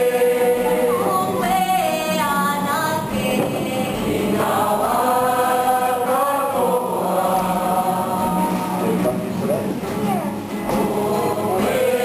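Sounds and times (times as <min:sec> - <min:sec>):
group singing sustained notes: 0:00.0 - 0:12.0.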